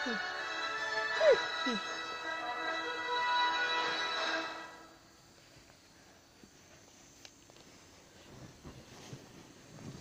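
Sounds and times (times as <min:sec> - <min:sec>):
soundtrack music with held notes: 0:00.0 - 0:04.9.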